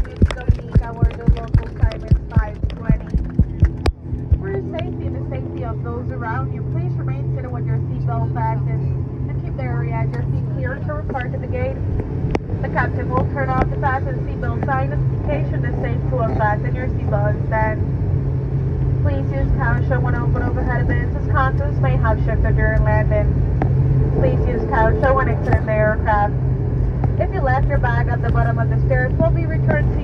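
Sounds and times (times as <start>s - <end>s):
turboprop engines droning: 0.0s - 30.0s.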